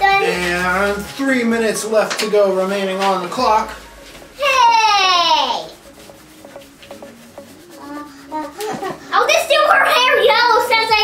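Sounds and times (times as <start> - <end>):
children's voices: 7.8 - 11.0.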